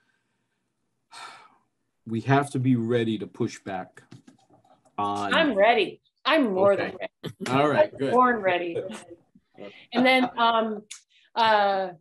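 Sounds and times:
person breathing: 0:01.2 - 0:01.5.

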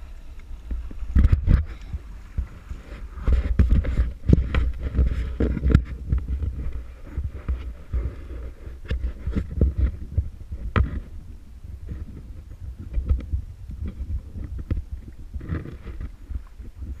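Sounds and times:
muffled low rumble: 0:00.0 - 0:17.0.

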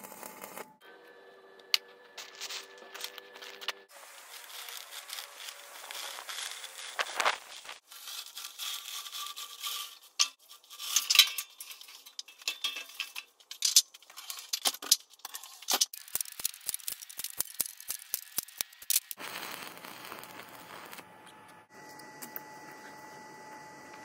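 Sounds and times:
steel parts clanking and scraping: 0:01.7 - 0:07.3, 0:07.9 - 0:19.2
steady hiss: 0:03.9 - 0:07.8.

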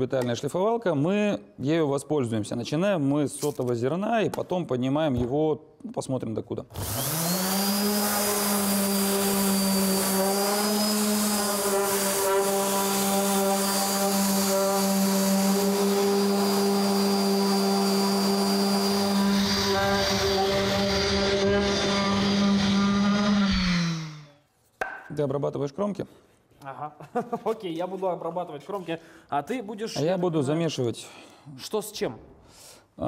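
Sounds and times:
electric orbital sander humming: 0:06.8 - 0:24.4.

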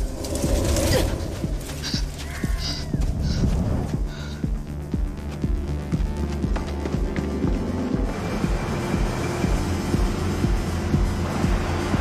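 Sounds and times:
low steady drone: 0:07.2 - 0:12.0.

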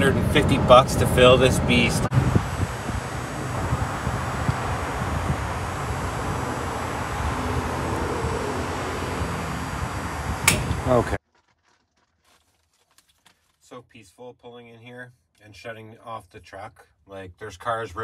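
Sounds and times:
fuel pump rushing: 0:00.0 - 0:11.2
fuel nozzle click: 0:10.4 - 0:10.8.

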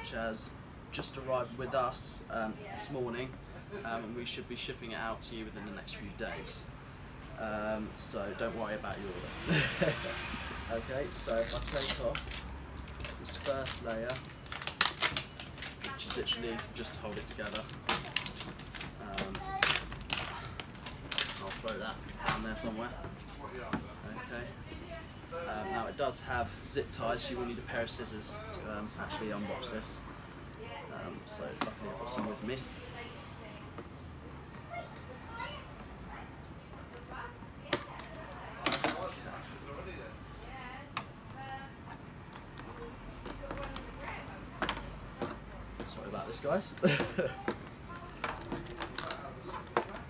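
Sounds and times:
faint background chatter: 0:00.0 - 0:50.0
wrapping band tearing: 0:11.0 - 0:21.8.

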